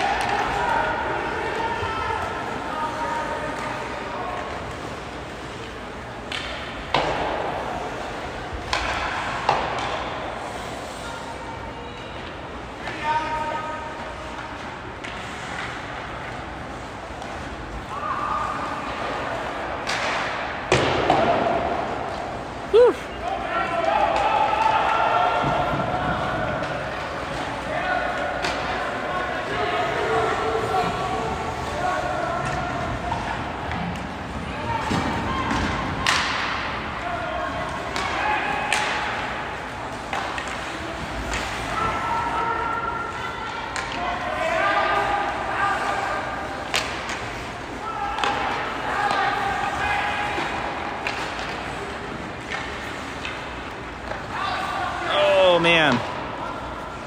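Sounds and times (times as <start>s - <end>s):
hockey sticks and puck knocking: 3.4s - 10.2s, 18.6s - 22.3s, 23.8s - 29.1s, 30.0s - 37.0s, 37.6s - 42.1s, 43.7s - 54.6s.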